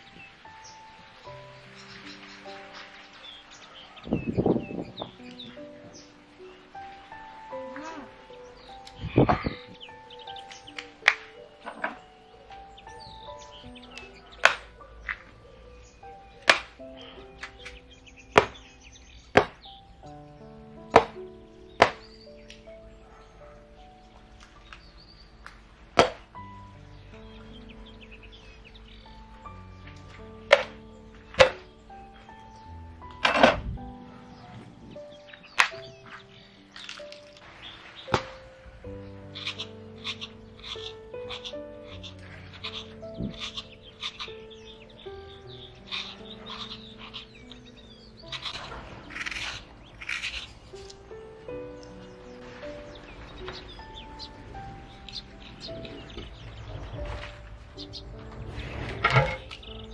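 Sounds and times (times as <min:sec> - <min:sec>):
soft background music: 0:00.0 - 0:59.9.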